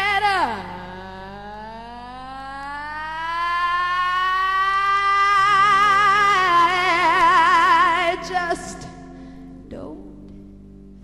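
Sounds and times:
woman singing long note: 0.0 - 9.0
band sustained low chord: 5.9 - 11.0.

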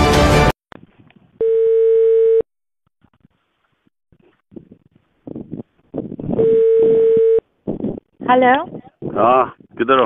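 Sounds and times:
telephone line tone: 1.4 - 2.5, 6.4 - 7.4.

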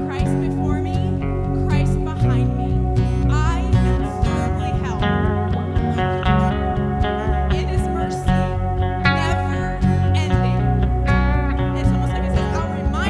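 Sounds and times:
acoustic guitar: 0.0 - 13.0
bass: 0.0 - 13.0
keyboard: 0.0 - 13.0
voices singing: 0.0 - 13.0.

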